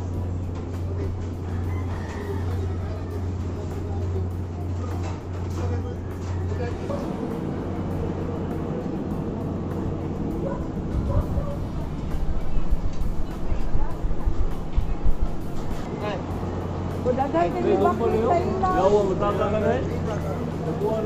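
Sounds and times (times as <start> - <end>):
steady low hum: 0.0 - 1.8, 2.4 - 21.0
people talking: 0.7 - 15.1, 17.0 - 21.0.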